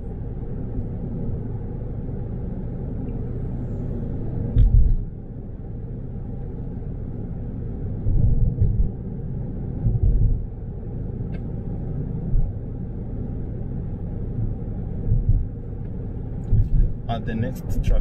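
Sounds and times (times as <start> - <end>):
road and engine noise in car: 0.0 - 18.0.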